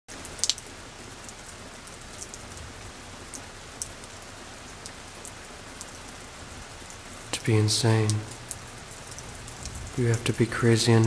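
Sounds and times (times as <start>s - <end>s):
steady rain: 0.1s - 11.0s.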